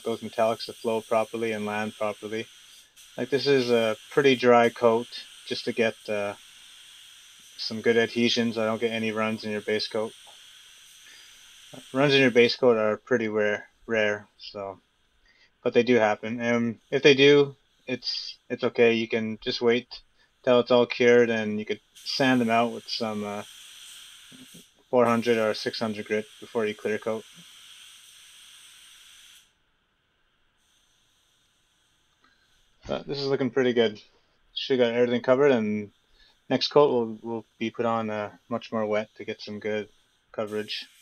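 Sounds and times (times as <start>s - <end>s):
spray gun hissing: 0.0s - 13.3s, 16.0s - 18.6s, 21.3s - 29.5s, 34.6s - 41.0s.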